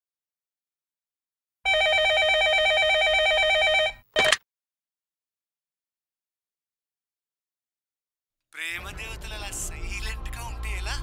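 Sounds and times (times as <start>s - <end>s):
telephone ringing: 1.7s - 4.4s.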